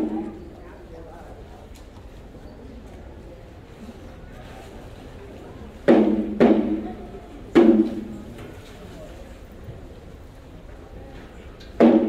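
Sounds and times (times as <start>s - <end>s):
large drum strokes: 5.8s - 8.4s, 11.8s - 12.0s.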